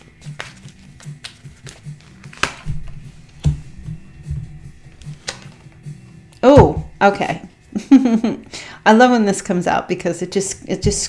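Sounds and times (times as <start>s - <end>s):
cards shuffled and laid down: 0.0s - 3.6s, 4.9s - 5.8s
soft music with pulsing low tone: 0.0s - 11.0s.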